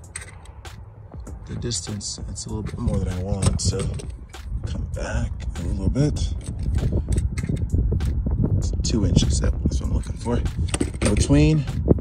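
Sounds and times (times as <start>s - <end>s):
tape measure clicks and rustles: 0.0s - 0.6s, 6.3s - 7.8s
steady low rumble: 0.0s - 12.0s.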